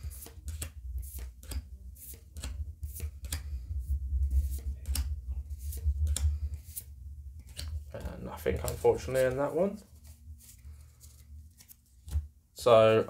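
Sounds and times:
cards flicking snaps: 0:00.2 - 0:03.6, 0:04.4 - 0:06.8, 0:07.4 - 0:07.8.

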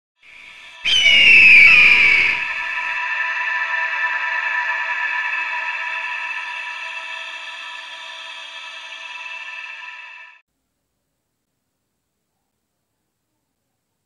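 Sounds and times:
ringing chord: 0:00.3 - 0:10.4.

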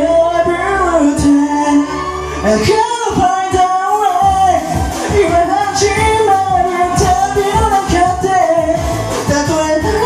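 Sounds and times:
dance backing track with beat: 0:00.0 - 0:10.0
person singing karaoke: 0:00.0 - 0:10.0.

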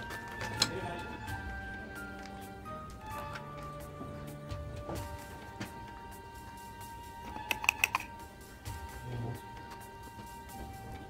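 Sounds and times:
background music: 0:00.0 - 0:11.0
plastic pipette parts clicking: 0:07.3 - 0:08.1.

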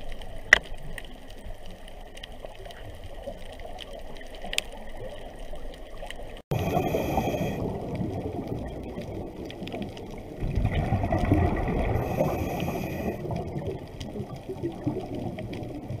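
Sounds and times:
muffled bubbling underwater rumble: 0:00.0 - 0:16.0
faint high whine: 0:06.6 - 0:07.6.

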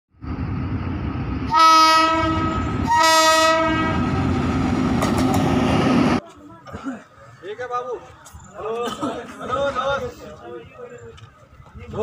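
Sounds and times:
rumble of approaching train: 0:00.1 - 0:06.6
train horn blasts: 0:01.5 - 0:04.1.

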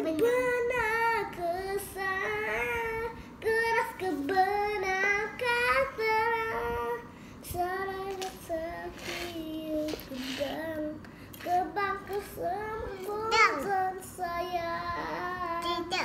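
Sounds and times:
boy singing unaccompanied: 0:00.0 - 0:16.0.

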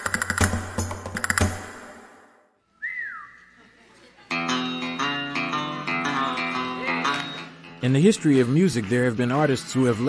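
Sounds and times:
rising and falling whistle: 0:02.6 - 0:03.4.

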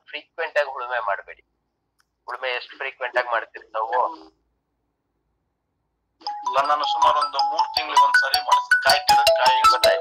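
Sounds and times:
smartphone ringtone: 0:06.2 - 0:10.0.

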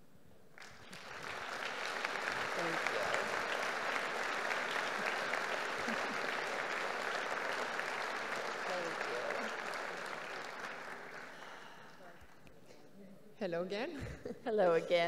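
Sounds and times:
audience applauding: 0:00.6 - 0:12.0.

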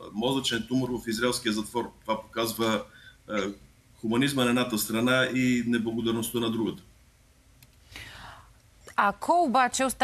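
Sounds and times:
person breathing in softly: 0:02.9 - 0:03.2, 0:07.9 - 0:08.6.

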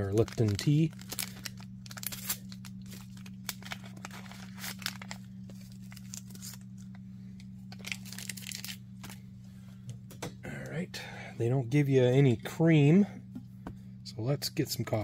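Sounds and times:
tea sachet tearing and crinkling: 0:00.0 - 0:07.0, 0:07.7 - 0:09.2
low steady hum: 0:00.0 - 0:15.0.

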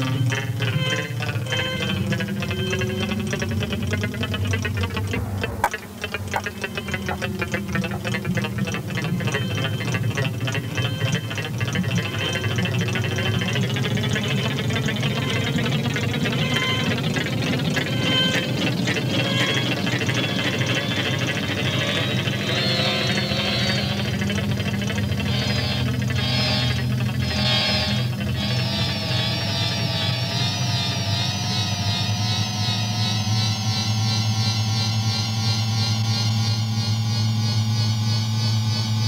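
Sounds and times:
low electronic drone: 0:00.0 - 0:39.0
rapid ticking pulses: 0:00.1 - 0:28.6
higher held tones: 0:04.6 - 0:08.4
rising electronic tone: 0:04.8 - 0:08.2.

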